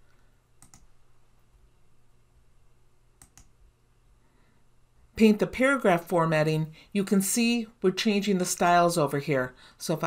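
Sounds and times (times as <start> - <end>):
faint low hum: 0.0 - 10.0
computer mouse clicks: 0.6 - 0.9, 3.2 - 3.6.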